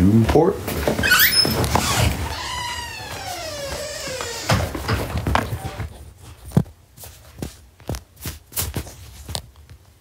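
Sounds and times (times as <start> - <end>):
door creaking open: 0.8 - 5.9
door thud: 3.6 - 5.4.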